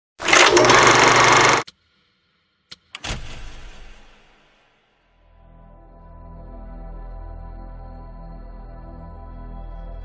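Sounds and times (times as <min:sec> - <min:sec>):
loud rapid buzzing rattle: 0:00.2 - 0:01.7.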